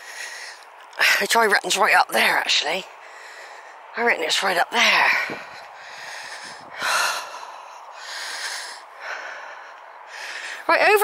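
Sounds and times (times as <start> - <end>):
person breathing close up: 0.0 - 1.2, 2.9 - 3.9, 4.8 - 10.7.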